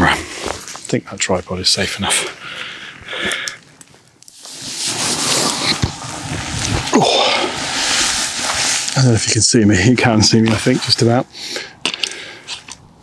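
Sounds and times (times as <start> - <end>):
rustling and handling noise: 2.6 - 11.2.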